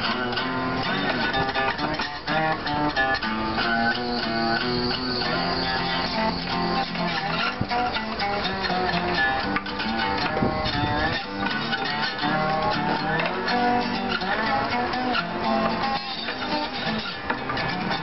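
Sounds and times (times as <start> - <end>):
acoustic guitar plucked: 0.0 - 18.0.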